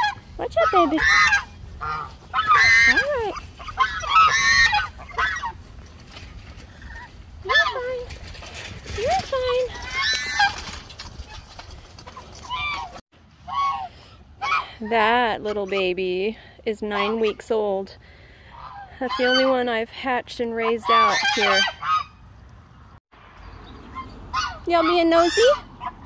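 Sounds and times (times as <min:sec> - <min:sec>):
geese honking: 0:00.0 - 0:05.6, 0:12.5 - 0:14.7, 0:18.5 - 0:19.7, 0:20.6 - 0:22.2, 0:23.9 - 0:26.0.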